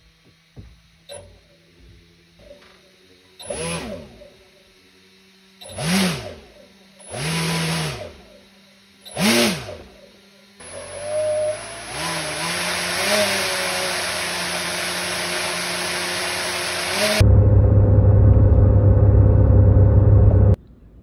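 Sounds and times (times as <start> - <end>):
electric motor spinning propeller: 0.0 - 17.3.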